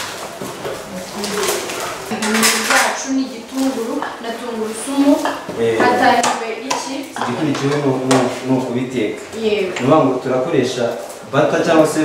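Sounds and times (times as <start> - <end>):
metal kitchenware scraping and clinking: 1.2 - 8.5.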